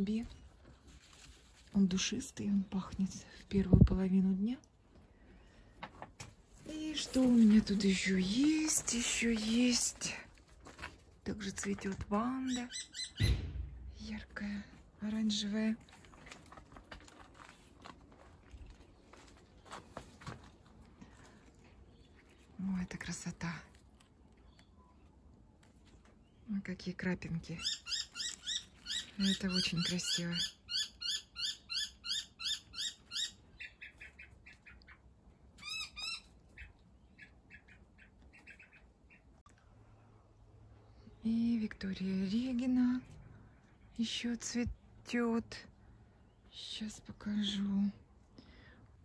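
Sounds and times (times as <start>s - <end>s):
leaves rustling: 0.8s - 2.1s
faint footsteps: 15.8s - 22.4s
bird chirping: 35.6s - 39.3s.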